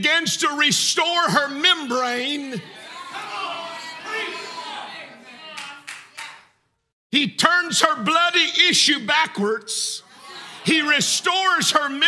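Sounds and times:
congregation voices: 0.2s - 6.5s, 8.0s - 12.0s
hand claps: 5.5s - 6.6s.

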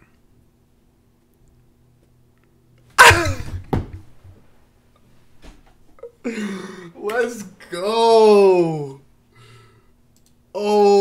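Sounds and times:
loud vocal outburst: 3.0s - 3.6s.

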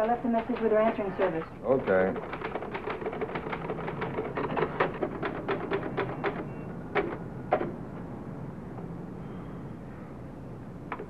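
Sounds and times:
typewriter keys clacking: 0.0s - 7.7s.

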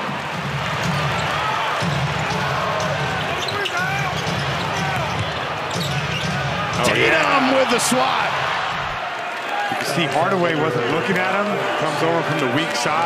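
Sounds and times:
sneaker squeaks: 3.2s - 6.5s.

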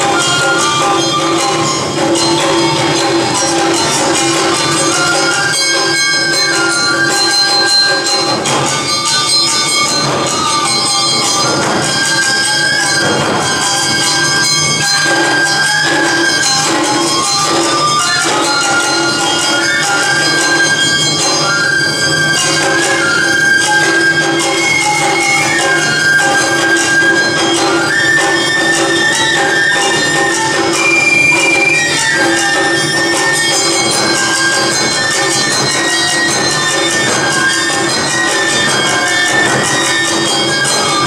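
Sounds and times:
bamboo flutes: 0.0s - 41.0s
drums: 0.0s - 41.0s.

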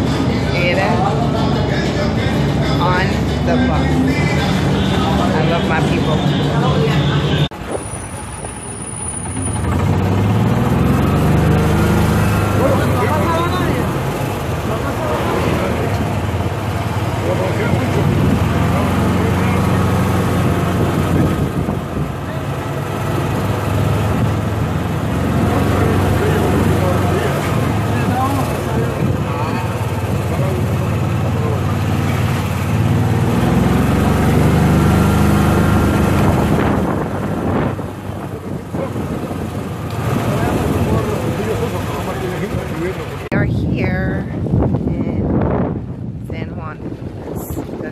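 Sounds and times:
voices chattering: 0.0s - 34.3s, 34.9s - 44.3s
bus engine: 0.0s - 47.9s.

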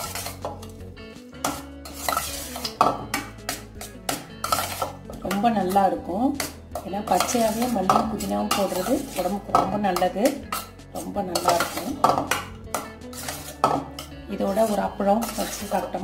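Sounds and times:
metal spoon scraping steel bowl: 0.0s - 0.8s, 1.4s - 16.0s.

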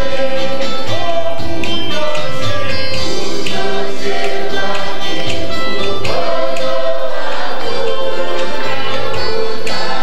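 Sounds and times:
choir singing gospel song: 0.0s - 10.0s
steady percussion beat: 0.0s - 10.0s.

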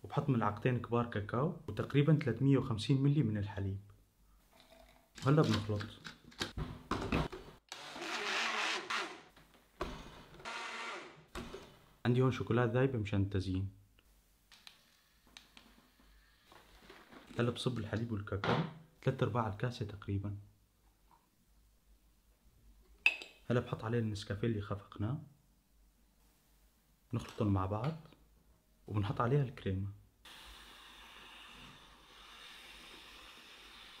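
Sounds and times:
blender running: 7.7s - 9.1s
aerosol can hissing: 30.3s - 34.0s.

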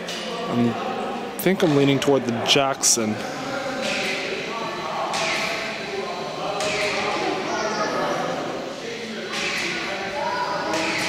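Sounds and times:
echoing indistinct chatter: 0.0s - 11.0s.

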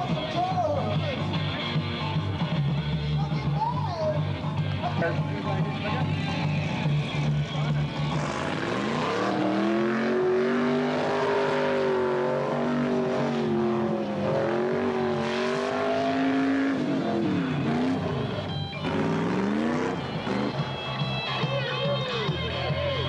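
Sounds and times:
car engine revving hard: 8.0s - 20.7s.

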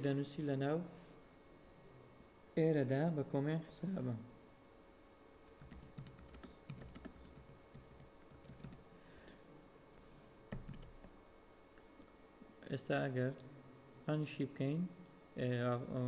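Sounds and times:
keystrokes on computer keyboard: 5.5s - 8.8s, 10.5s - 11.1s.

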